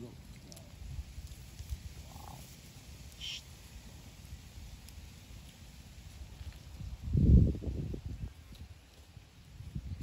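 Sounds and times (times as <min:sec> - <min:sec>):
faint animal calls: 0:02.0 - 0:02.5, 0:03.2 - 0:03.5.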